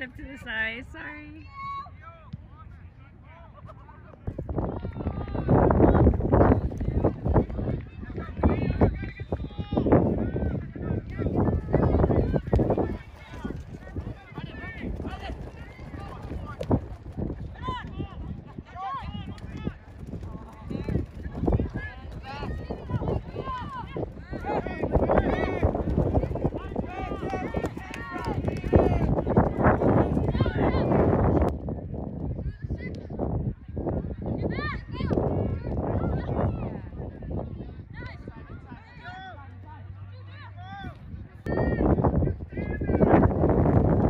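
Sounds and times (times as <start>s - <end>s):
people shouting and calling out: 4.6s - 31.4s.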